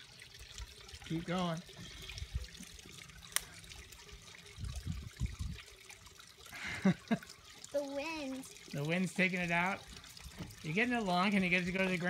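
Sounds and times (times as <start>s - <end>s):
foam bubbling: 0.0s - 12.0s
wind thumps on microphone: 4.6s - 5.6s.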